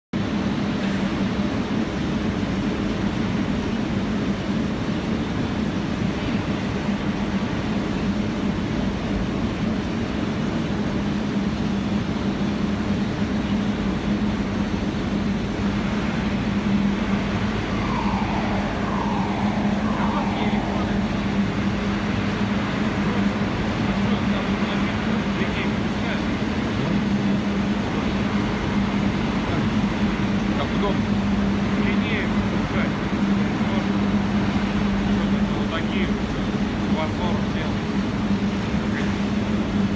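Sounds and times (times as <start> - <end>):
electric arc furnace roaring: 0.2 - 39.9
short falling tones: 17.2 - 22.0.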